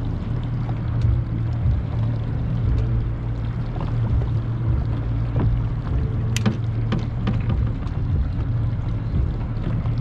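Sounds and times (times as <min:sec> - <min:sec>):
motorboat engine humming: 0:00.0 - 0:10.0.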